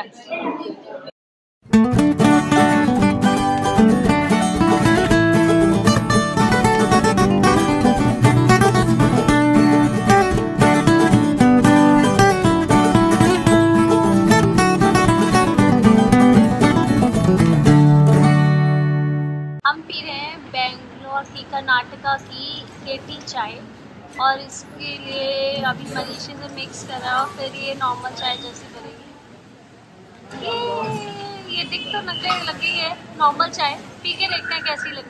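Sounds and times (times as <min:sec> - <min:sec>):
plucked acoustic guitar music: 0:01.6 - 0:19.6.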